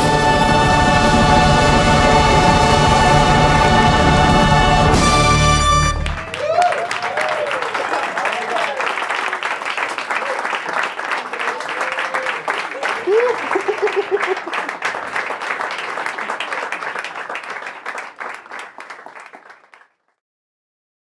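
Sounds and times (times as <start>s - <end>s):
audience applauding and cheering: 0.0s - 20.0s
person whooping: 6.2s - 8.9s, 11.8s - 14.6s.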